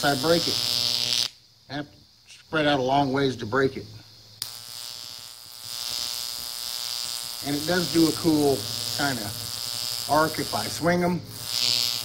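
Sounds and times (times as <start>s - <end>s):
electric arc snapping and buzzing: 0.0s - 1.4s, 3.7s - 12.0s.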